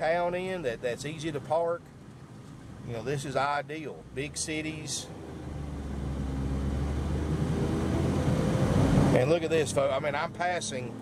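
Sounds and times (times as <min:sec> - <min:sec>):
road rumble: 0:00.0 - 0:11.0
car engine accelerating: 0:04.2 - 0:11.0.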